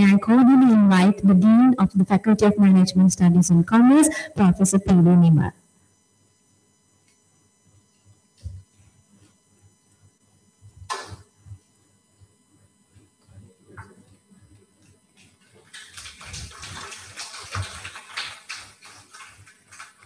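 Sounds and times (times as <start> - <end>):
audience clapping: 15.6 - 20.0.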